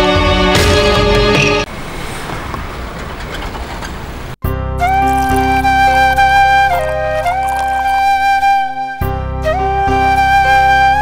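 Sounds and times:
traffic rumble and hiss: 0:01.6 - 0:04.4.

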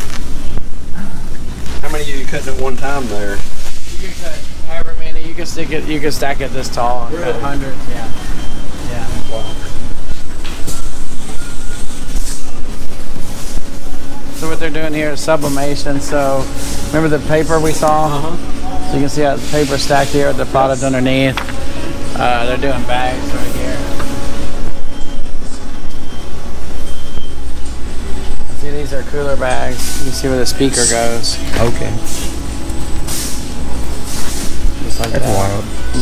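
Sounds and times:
faint high whine: 0:00.0 - 0:34.1, 0:34.7 - 0:36.0
machinery rumbling and rattling: 0:00.0 - 0:36.0.

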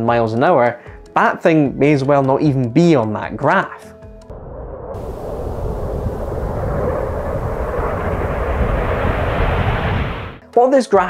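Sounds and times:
jet engine roar: 0:04.3 - 0:10.4.

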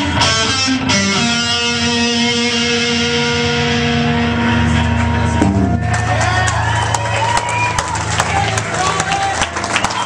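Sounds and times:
sustained guitar band chord: 0:00.0 - 0:05.9.

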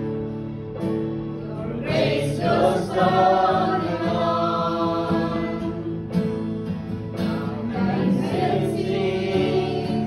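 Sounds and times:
acoustic guitar: 0:00.0 - 0:10.0
group singing worship song: 0:01.5 - 0:10.0.

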